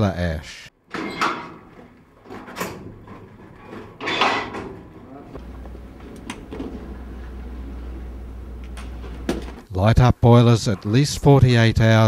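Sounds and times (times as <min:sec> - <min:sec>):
metal buckets scraping and clattering: 0:00.9 - 0:07.4
steady low hum: 0:04.8 - 0:09.6.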